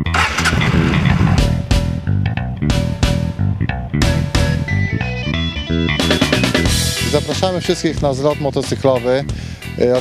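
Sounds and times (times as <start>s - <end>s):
motorcycle engine starting: 0.0s - 4.7s
rock music with guitars: 0.0s - 10.0s.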